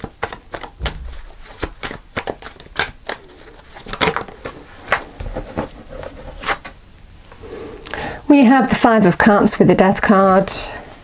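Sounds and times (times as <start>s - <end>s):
cards being shuffled: 0.0s - 5.7s.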